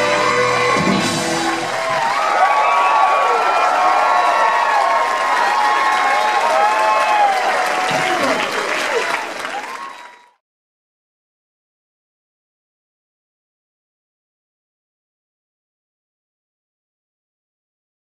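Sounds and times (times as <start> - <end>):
rock band with horns: 0.0 - 2.9
crowd cheering and applauding: 0.0 - 10.4.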